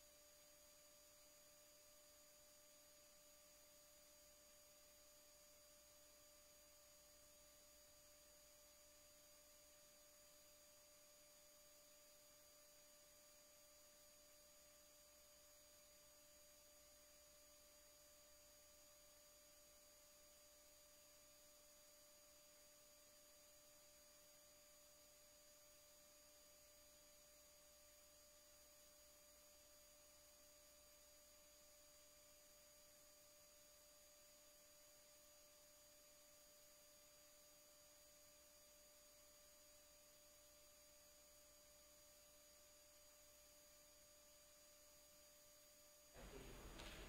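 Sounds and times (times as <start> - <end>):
faint steady hiss: 0.0 - 47.0.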